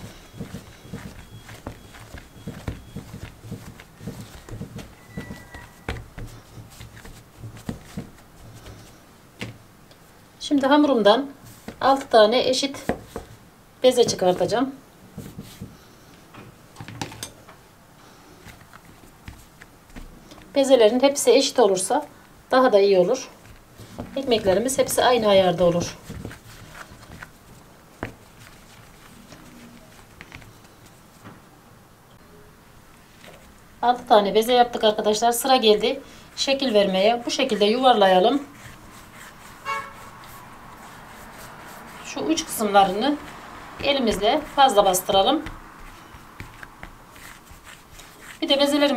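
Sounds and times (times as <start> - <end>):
palms rolling bread dough: 0.0 - 17.2, 18.0 - 21.6, 22.6 - 31.5, 32.9 - 48.9
steady low hiss: 5.7 - 16.8.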